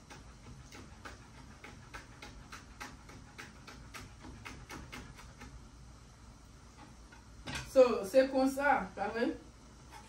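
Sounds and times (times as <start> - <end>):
knife chopping on cutting board: 0.0 - 5.6.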